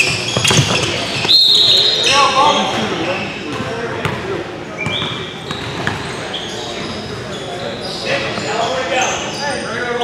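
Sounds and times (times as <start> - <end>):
basketball bouncing on hardwood floor: 0.0 - 1.3
referee's whistle blast: 1.2 - 2.2.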